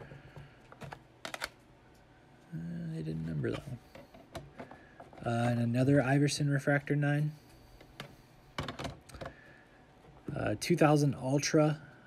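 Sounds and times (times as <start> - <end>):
plastic card cases clicking: 0.7 - 1.6.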